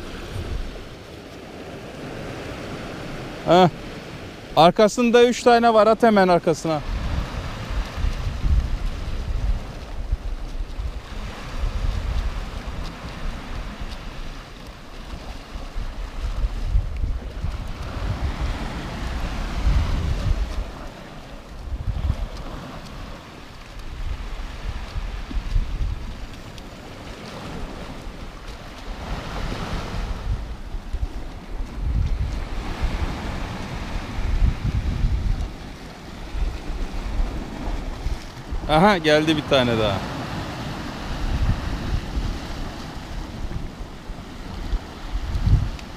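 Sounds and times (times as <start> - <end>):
surf breaking on rocks: 0.0 - 45.9
wind rumble on microphone: 0.0 - 45.9.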